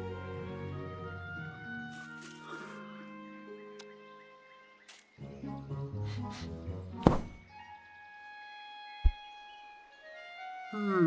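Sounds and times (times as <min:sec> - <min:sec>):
dull low thud: 0:07.0 - 0:07.4.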